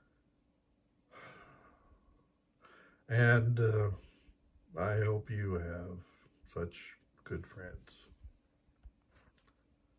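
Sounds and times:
man sighing: 1.1 - 1.9.

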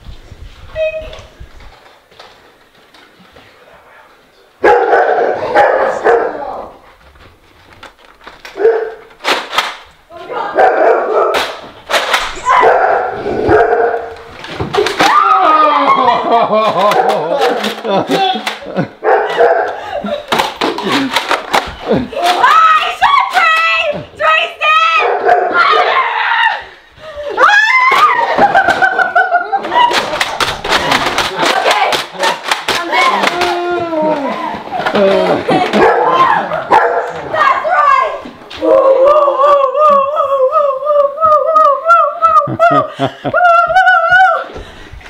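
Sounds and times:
foam-dart blasters clicking: 11.4 - 12.4, 29.9 - 33.6
people shouting and laughing: 14.0 - 44.6.

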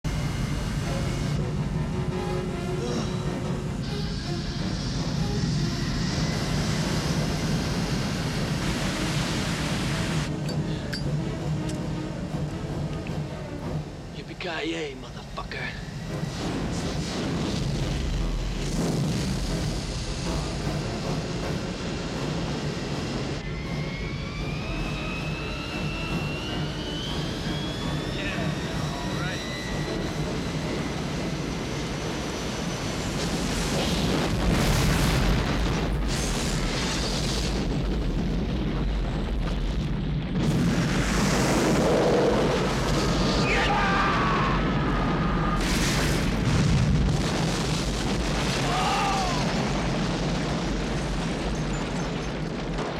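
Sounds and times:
jet engines whining: 0.0 - 52.9
fire burning: 0.1 - 52.9
orchestral music: 0.3 - 5.8, 10.2 - 18.6
heavy booms: 44.4 - 52.9.

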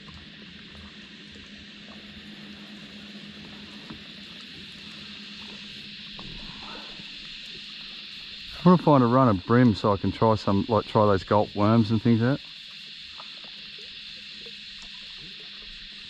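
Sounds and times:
faint ticks: 0.0 - 8.7, 11.6 - 16.0
water hissing around boat: 0.0 - 16.0.

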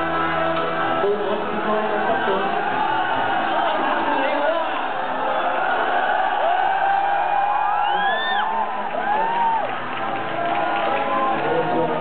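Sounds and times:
audience cheering and whooping: 0.0 - 12.0
music: 0.0 - 12.0.

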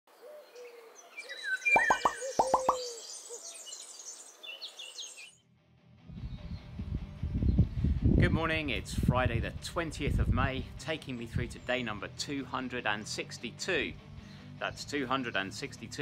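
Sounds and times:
bird calls: 0.1 - 5.3
plopping pops: 1.8 - 2.9.

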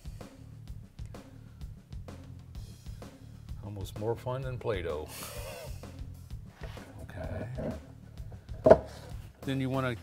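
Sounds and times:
soft background music: 0.0 - 10.0
wooden boards knocking: 7.3 - 7.9, 8.5 - 9.1.

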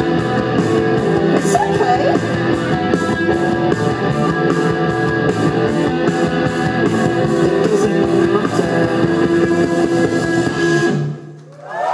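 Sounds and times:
distorted electric guitar and bass: 0.0 - 11.4
drums: 0.0 - 11.5.

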